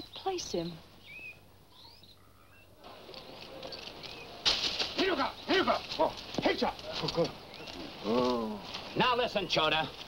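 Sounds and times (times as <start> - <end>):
background hubbub: 0.0 - 10.0.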